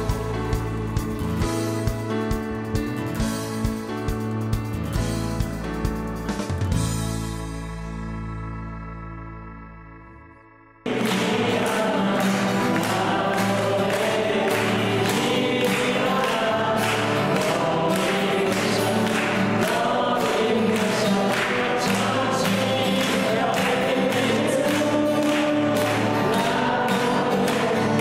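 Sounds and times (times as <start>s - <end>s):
group singing a song: 0.0s - 2.0s, 10.8s - 28.0s.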